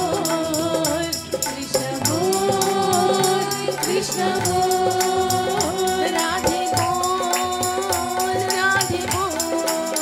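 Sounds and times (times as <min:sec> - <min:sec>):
group singing devotional song: 0:00.0 - 0:10.0
jingling hand percussion: 0:00.0 - 0:10.0.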